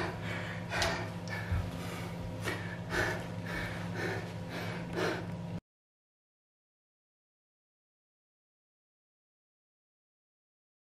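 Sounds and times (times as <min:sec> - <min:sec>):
faint steady low hum: 0:00.0 - 0:05.6
man breathing hard: 0:00.0 - 0:05.6.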